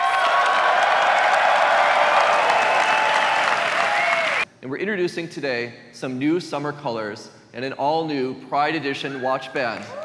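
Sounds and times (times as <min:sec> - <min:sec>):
audience cheering and shouting: 0:00.0 - 0:04.4
audience clapping: 0:00.0 - 0:04.4.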